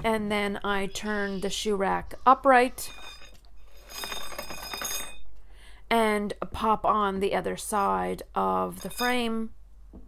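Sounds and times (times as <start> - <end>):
metal bars rattling and clinking: 3.0 - 5.2, 8.8 - 9.3.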